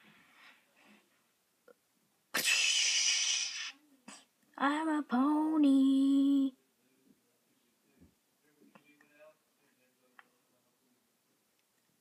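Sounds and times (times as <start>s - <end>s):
loud harsh hiss: 2.4s - 3.8s.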